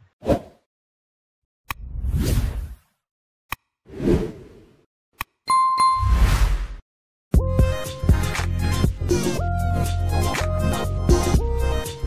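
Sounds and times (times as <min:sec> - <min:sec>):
ringing dings: 0:05.5 - 0:06.1.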